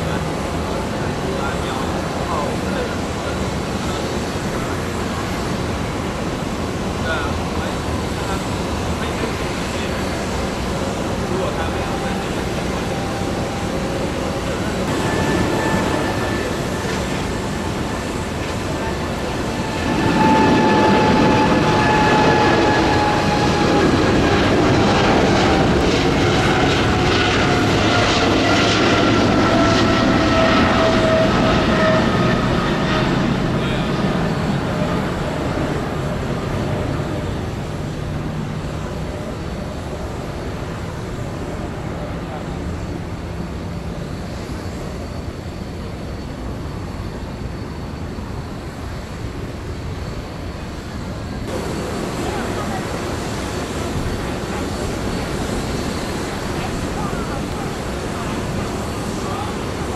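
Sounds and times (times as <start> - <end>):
jet engine roar with fan whine: 0.0 - 59.9.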